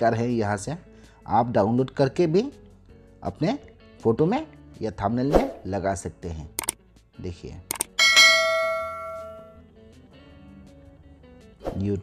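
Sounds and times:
bell chime ding: 8.0s - 9.6s.

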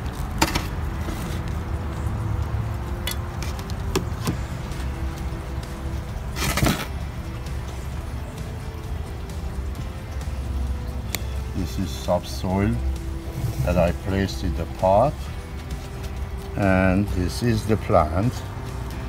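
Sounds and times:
soft background music: 0.0s - 19.0s
soil scraping in a pot: 0.5s - 1.6s, 6.3s - 7.0s, 13.2s - 14.2s.

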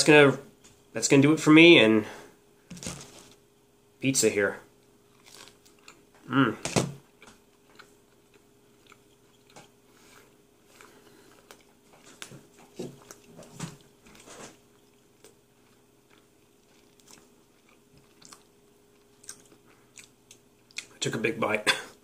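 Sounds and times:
faint steady hum: 0.0s - 22.0s
person chewing food: 5.0s - 6.3s, 7.0s - 21.0s.

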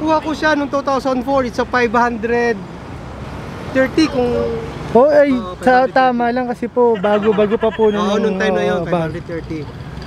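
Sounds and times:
outdoor traffic hum: 0.0s - 10.0s
person speaking: 3.8s - 9.0s.

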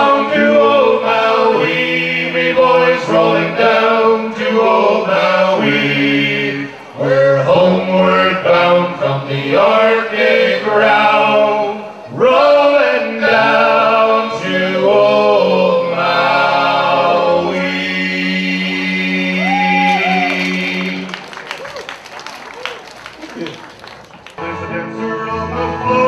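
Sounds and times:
men singing in harmony: 0.0s - 21.1s.

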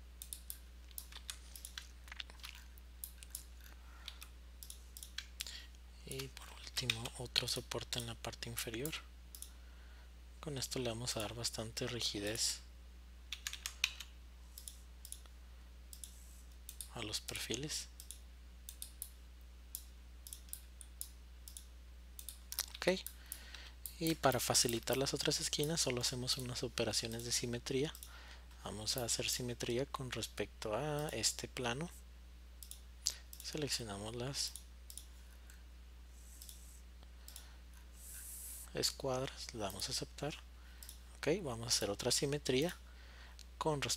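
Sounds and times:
faint electrical hum: 0.0s - 43.9s
computer mouse clicking: 0.2s - 5.5s, 9.3s - 9.5s, 13.3s - 15.3s, 15.9s - 28.1s, 34.5s - 35.1s, 36.3s - 37.5s.

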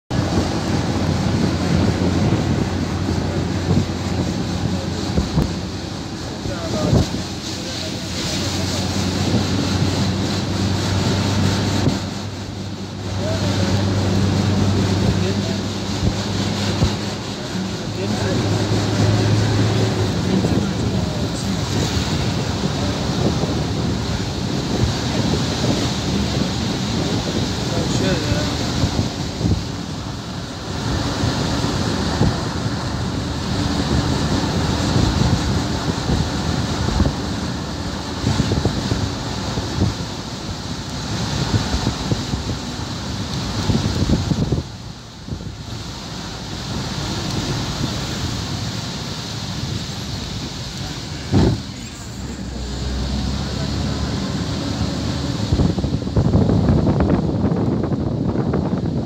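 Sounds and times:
road noise: 0.0s - 59.0s
van engine hum: 0.1s - 59.0s
wind noise: 0.1s - 59.0s.

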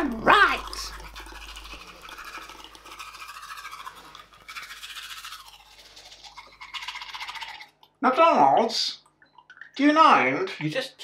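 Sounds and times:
toothbrush scrubbing teeth: 0.0s - 8.0s.

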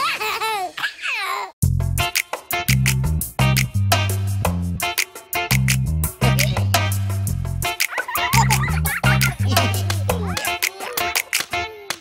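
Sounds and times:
small child giggling: 0.0s - 1.6s, 6.2s - 6.8s, 7.8s - 12.0s
upbeat song with bass: 1.6s - 11.5s.

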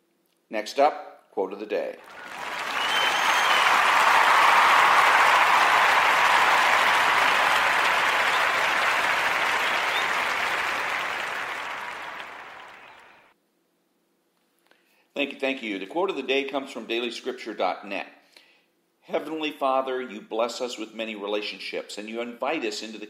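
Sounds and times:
audience applause: 2.0s - 13.3s.

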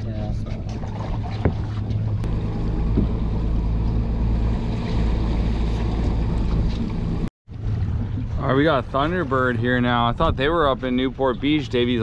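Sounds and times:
boat engine running: 0.0s - 12.0s
water sloshing against hull: 0.0s - 12.0s.

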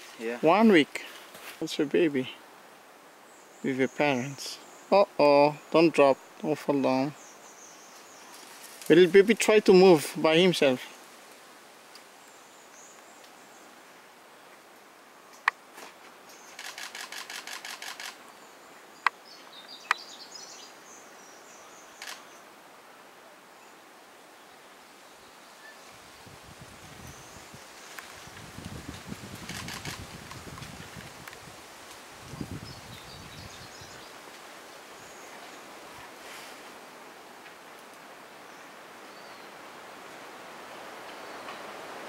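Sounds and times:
sharp clicks: 16.6s - 18.2s, 22.0s - 22.2s, 29.5s - 30.4s.

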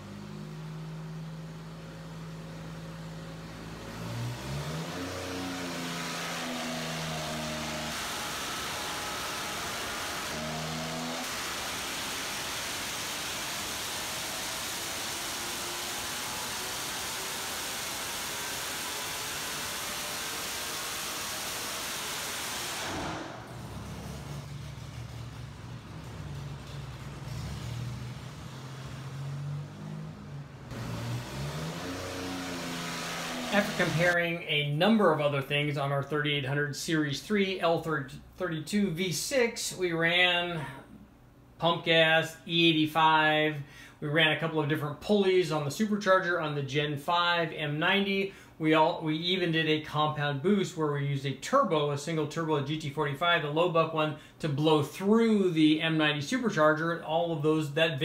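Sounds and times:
car engine revving on dyno: 0.0s - 34.2s.

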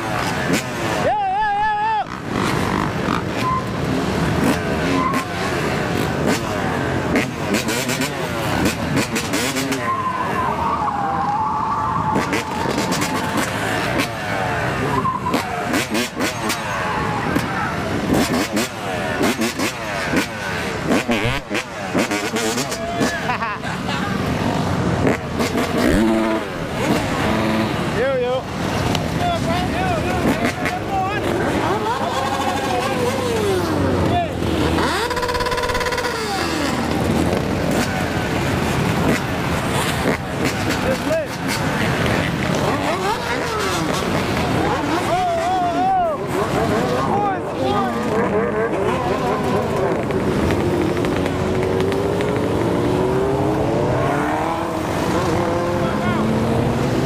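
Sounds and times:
motorcycle engines idling and revving: 0.0s - 57.0s
voices calling out: 0.0s - 57.0s.

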